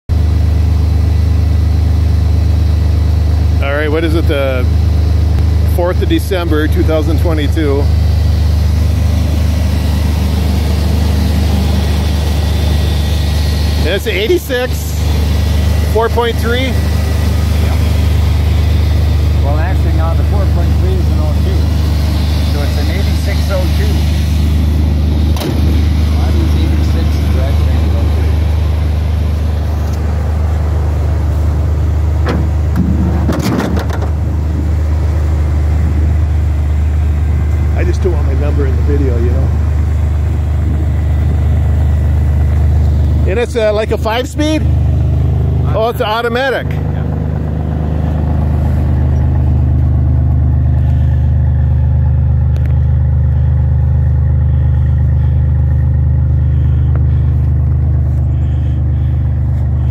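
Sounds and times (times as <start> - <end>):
car engine idling: 0.1 - 59.9.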